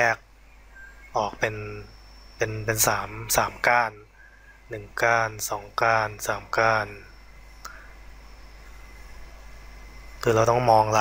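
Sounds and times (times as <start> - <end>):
faint hiss: 0.0 - 11.0
low hum: 0.0 - 11.0.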